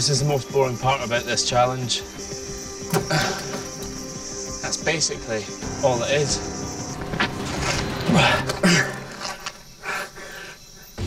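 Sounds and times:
heavy breathing: 0:07.9 - 0:11.0.

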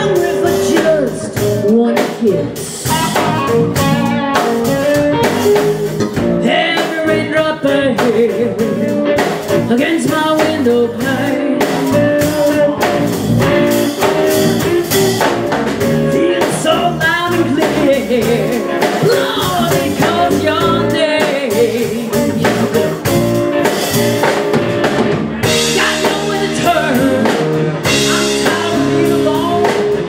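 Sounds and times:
woman singing: 0:00.0 - 0:02.9, 0:06.4 - 0:13.2, 0:16.0 - 0:23.2, 0:25.4 - 0:30.0
drum kit: 0:00.0 - 0:30.0
electric guitar: 0:00.0 - 0:30.0.

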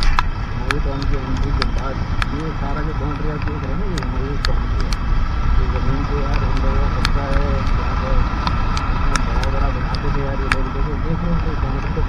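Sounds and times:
motorbike engine: 0:00.0 - 0:12.0
sharp ticks: 0:00.0 - 0:12.0
wet tyre noise on road: 0:00.0 - 0:12.0
wind rumbling over microphone: 0:00.0 - 0:12.0.

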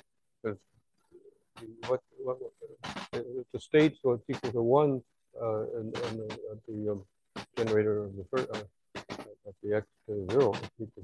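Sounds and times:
man speaking: 0:01.6 - 0:07.0, 0:07.6 - 0:11.0.

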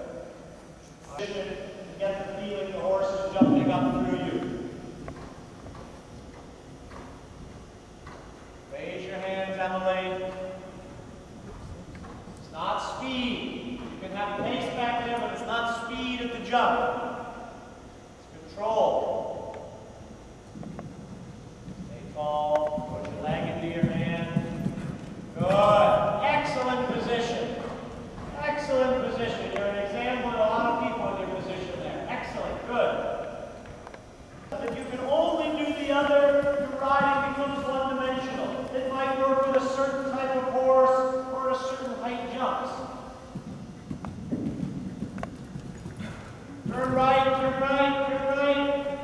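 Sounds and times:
horse hoofbeats on sand: 0:02.2 - 0:15.5, 0:20.5 - 0:33.2, 0:34.5 - 0:40.5, 0:43.3 - 0:49.0.

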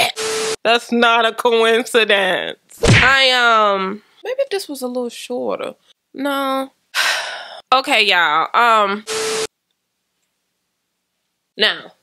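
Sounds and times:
static hiss with low tone: 0:04.0 - 0:12.0.

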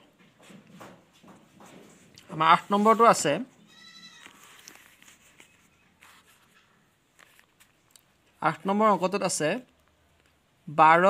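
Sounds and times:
paper rustling: 0:04.2 - 0:08.7.

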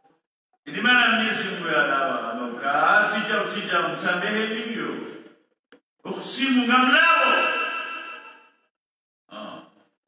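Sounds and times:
man speaking: 0:00.7 - 0:05.2, 0:06.0 - 0:08.1.

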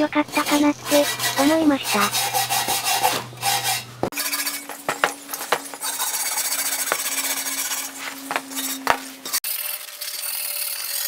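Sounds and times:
wire brush scrubbing rusty metal: 0:00.1 - 0:11.0.

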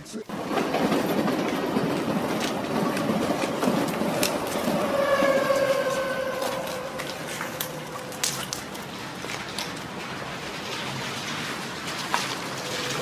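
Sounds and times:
train passing rumble: 0:00.3 - 0:13.0
drawn-out whine: 0:01.5 - 0:10.6.

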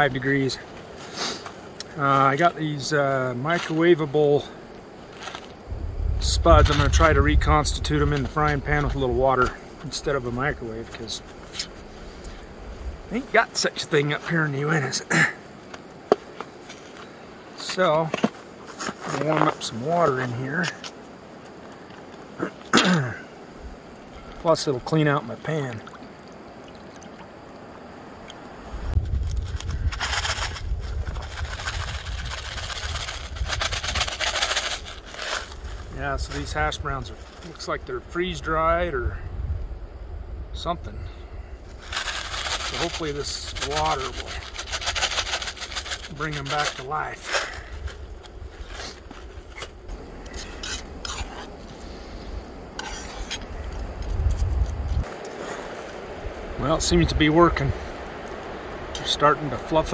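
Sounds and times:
low rumble: 0:05.7 - 0:09.2
spatula scraping a frying pan: 0:50.3 - 0:51.6, 0:52.8 - 0:53.5.

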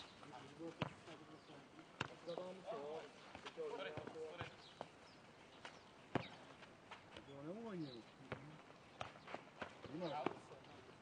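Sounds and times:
ball knocks on clay court: 0:06.1 - 0:06.4.

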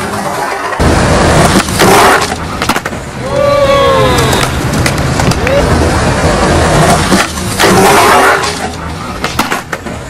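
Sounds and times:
skateboard wheels rolling on concrete: 0:00.0 - 0:10.0
skateboard clacking on ledge: 0:08.4 - 0:09.9.

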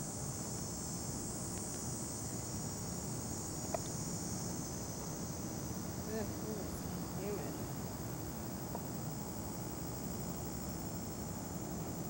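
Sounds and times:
insects chorus: 0:00.0 - 0:12.0.

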